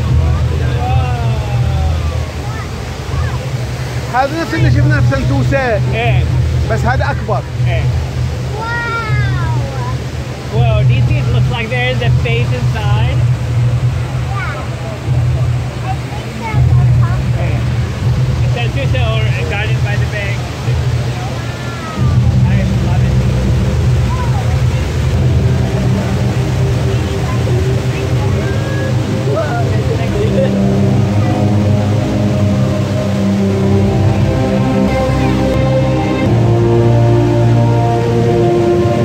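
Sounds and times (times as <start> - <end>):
chatter of many voices: 0.0 - 37.1
music with held notes: 0.0 - 39.0
waterfall rushing: 0.0 - 39.0.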